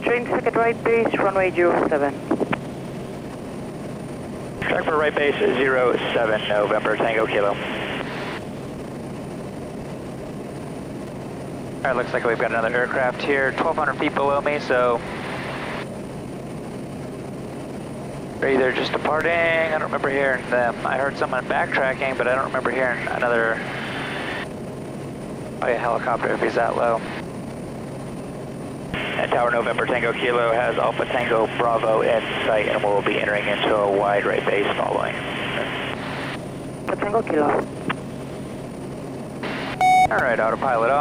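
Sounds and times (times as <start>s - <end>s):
turboprop engine and propeller drone: 0.0s - 41.0s
radio hiss: 4.6s - 8.4s, 11.9s - 15.8s, 18.4s - 24.5s, 25.6s - 27.2s, 28.9s - 37.6s, 39.4s - 41.0s.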